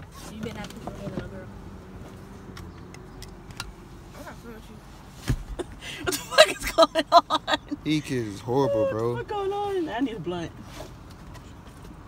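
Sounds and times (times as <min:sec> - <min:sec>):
car interior rumble while driving: 0:00.0 - 0:12.0.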